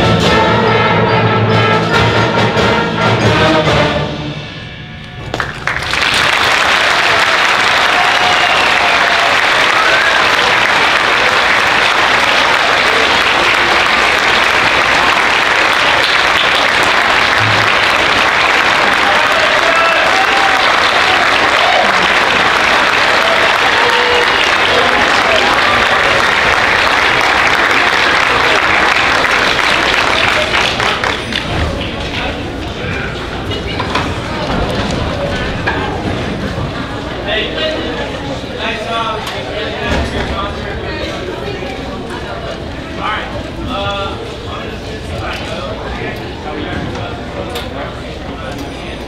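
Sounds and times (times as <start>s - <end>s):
audience applauding: 5.2s - 37.2s.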